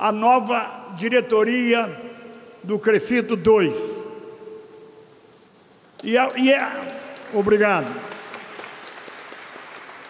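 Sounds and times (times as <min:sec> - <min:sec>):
man speaking over microphone: 0:00.0 - 0:04.6, 0:06.0 - 0:08.1.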